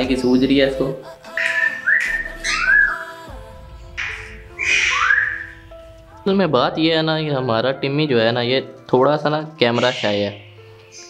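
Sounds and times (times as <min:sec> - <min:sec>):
background music with held tones: 0:00.0 - 0:11.0
cockatiel whistled calls: 0:01.4 - 0:03.0, 0:04.6 - 0:05.6, 0:09.8 - 0:11.0.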